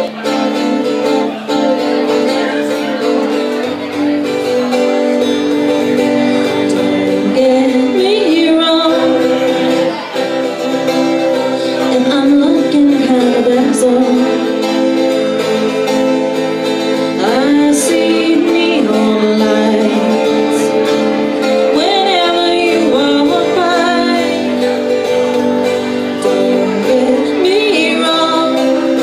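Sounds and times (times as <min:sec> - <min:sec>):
acoustic guitar strumming: 0:00.0 - 0:29.0
woman singing: 0:05.7 - 0:29.0.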